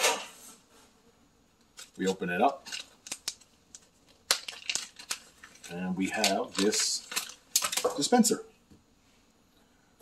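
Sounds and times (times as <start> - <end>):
plastic bag crinkling and clicking: 1.6 - 8.3.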